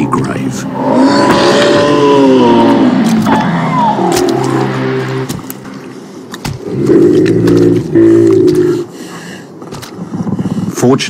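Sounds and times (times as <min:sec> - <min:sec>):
low drawn-out animal calls: 0:00.6 - 0:05.0.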